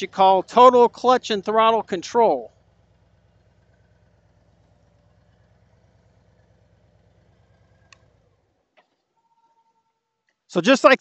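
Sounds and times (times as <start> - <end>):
motorcycle engine idling: 0.0 - 10.2.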